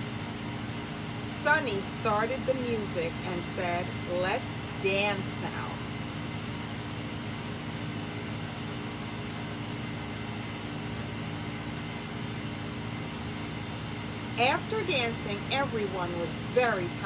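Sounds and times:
machine hum with hiss: 0.0 - 17.0.

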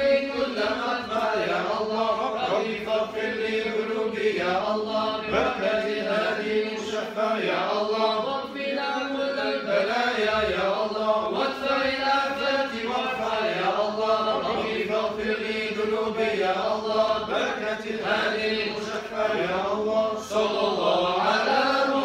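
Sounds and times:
men chanting together: 0.0 - 22.0.

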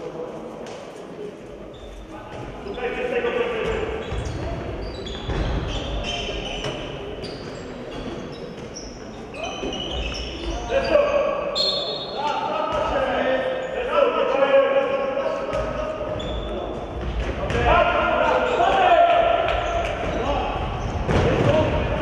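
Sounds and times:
shoes squeaking: 3.6 - 12.4, 15.5 - 17.1
players shouting: 17.5 - 22.0.

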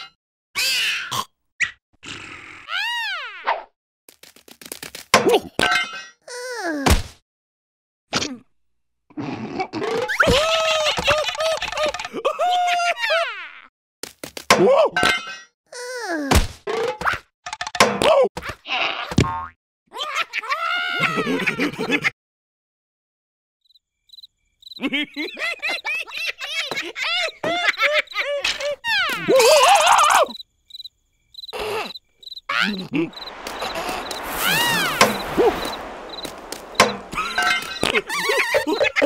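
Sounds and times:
cartoon creature voice: 15.7 - 16.3, 31.6 - 33.2.

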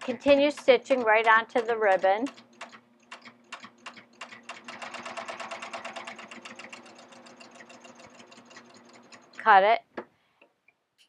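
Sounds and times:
sewing machine needle clicks: 0.0 - 9.5.

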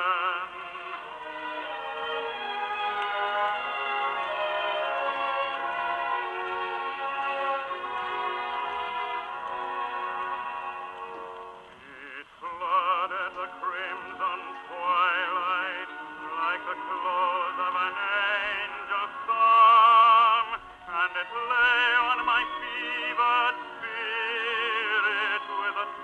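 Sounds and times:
gramophone record playing: 0.0 - 26.0
orchestra: 0.0 - 26.0
organ chords: 0.0 - 26.0
person singing with vibrato: 0.0 - 26.0.

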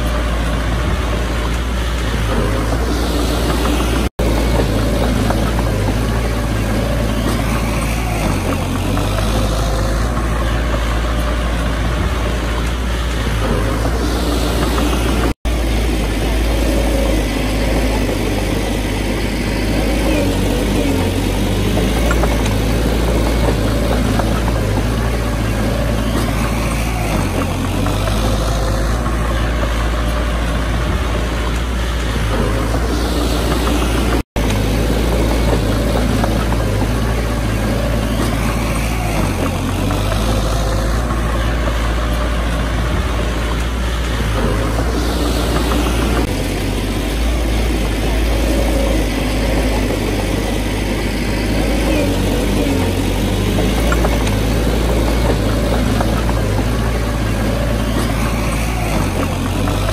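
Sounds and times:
bulldozer diesel engine running: 0.0 - 59.9
bulldozer pushing soil: 0.0 - 59.9.

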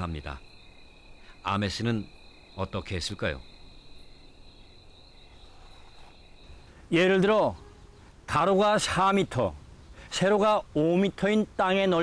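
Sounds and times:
insect trilling: 0.0 - 7.1.

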